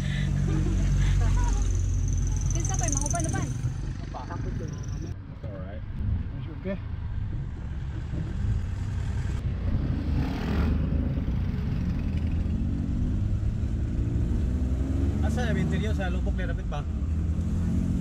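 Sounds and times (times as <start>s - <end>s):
motorcycle passing: 0.0s - 5.2s, 7.0s - 16.1s
vehicle engine and road rumble: 0.0s - 18.0s.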